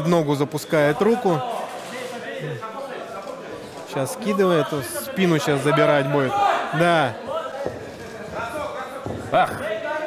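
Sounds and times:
faint voices in a large hall: 0.0 - 10.0.

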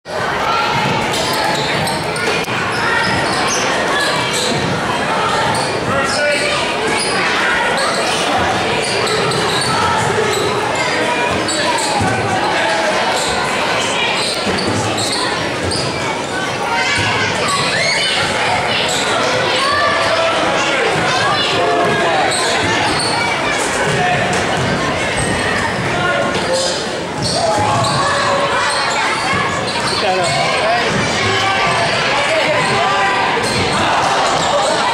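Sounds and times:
spectators chattering and calling: 0.0 - 34.9.

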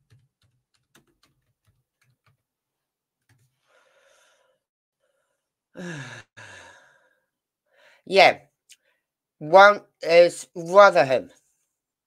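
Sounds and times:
man sighing: 5.8 - 7.0.

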